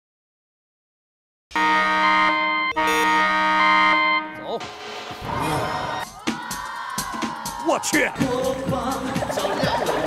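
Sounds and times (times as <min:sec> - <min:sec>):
electronic alarm buzz: 0:01.6 - 0:05.2.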